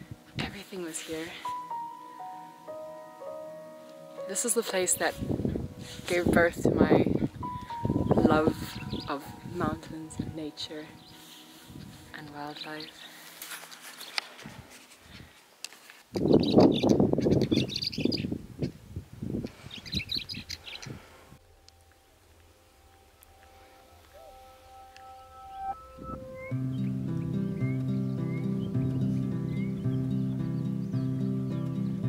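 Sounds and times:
instrumental music: 0.0 - 14.4, 21.4 - 32.0
birds chirping: 7.3 - 14.4, 16.2 - 18.8, 19.6 - 32.0.

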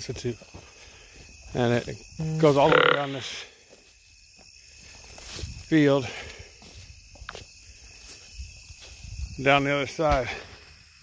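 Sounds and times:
faint footsteps on soil: 0.0 - 2.6, 3.5 - 10.7
crickets chirring: 0.0 - 11.0.

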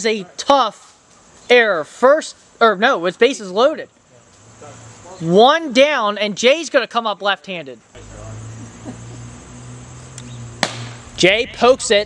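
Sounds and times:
plastic bat hitting ball: 10.6 - 11.0.

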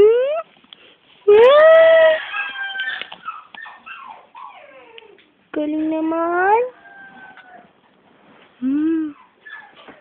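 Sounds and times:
puppy whining: 1.4 - 5.4, 6.9 - 8.0, 8.6 - 10.0.

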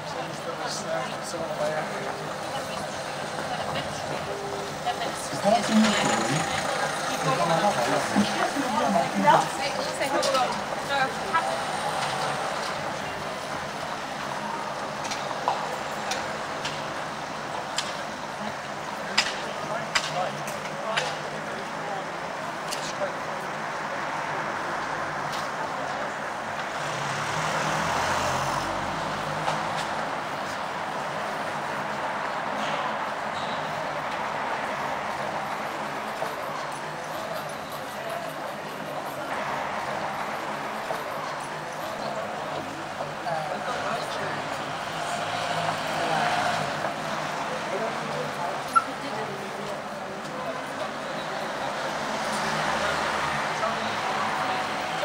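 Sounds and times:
passers-by talking: 0.0 - 55.0
traffic noise: 0.0 - 55.0.

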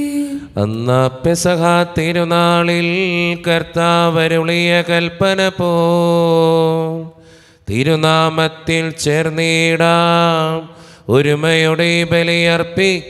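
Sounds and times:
man chanting a prayer: 0.0 - 13.0.

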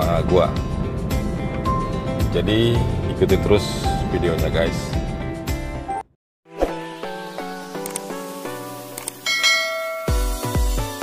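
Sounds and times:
bright high bell chime: 9.2 - 10.6
music with chiming bell notes: 9.2 - 11.0.

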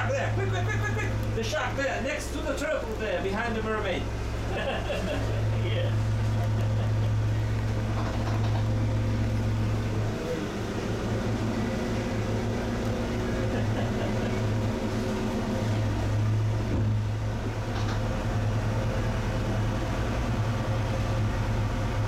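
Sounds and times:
boat engine humming: 0.0 - 22.0.

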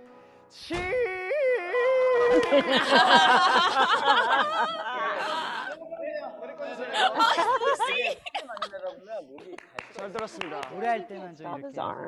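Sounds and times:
man singing a high held note: 0.5 - 3.0
men exclaiming and laughing: 2.0 - 5.9, 6.6 - 9.6.

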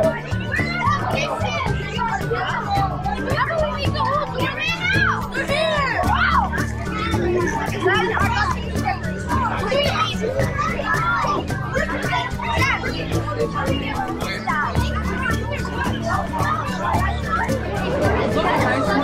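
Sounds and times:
children talking and calling out: 0.0 - 19.0
music playing: 0.0 - 19.0.

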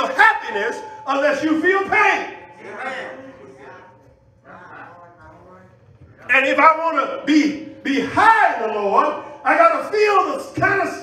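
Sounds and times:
congregation calling out responses: 0.0 - 5.2.

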